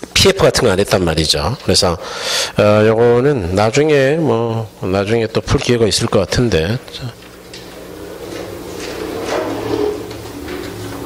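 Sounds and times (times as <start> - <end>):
low electrical hum: 0.0 - 11.0
soft scrapes: 7.8 - 11.0.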